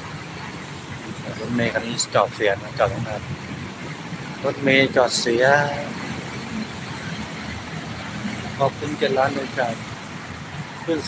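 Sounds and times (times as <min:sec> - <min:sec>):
bus passing: 0:00.0 - 0:11.0
low traffic rumble: 0:00.0 - 0:11.0
passing cars: 0:00.0 - 0:11.0.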